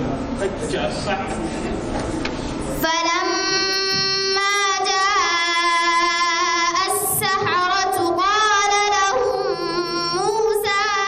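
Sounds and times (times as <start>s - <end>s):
woman chanting melodically: 2.7s - 11.0s.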